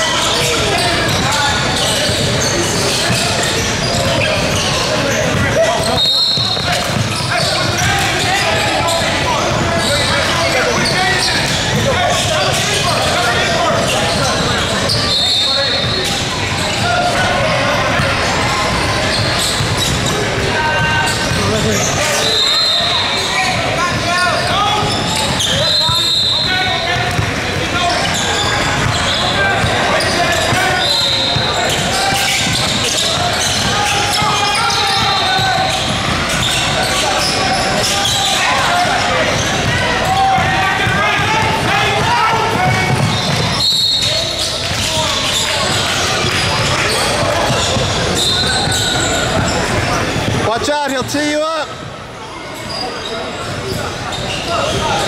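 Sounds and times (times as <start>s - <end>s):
indistinct chatter: 0.0s - 55.0s.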